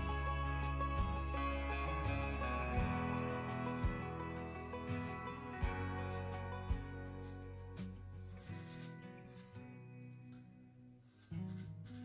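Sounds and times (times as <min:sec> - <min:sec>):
quiet acoustic guitar music: 0:00.0 - 0:12.0
pastel stick rubbing on paper: 0:04.5 - 0:09.7, 0:11.0 - 0:12.0.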